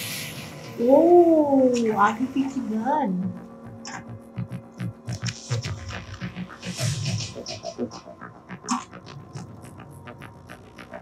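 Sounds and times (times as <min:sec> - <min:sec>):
action film soundtrack: 0:00.0 - 0:11.0.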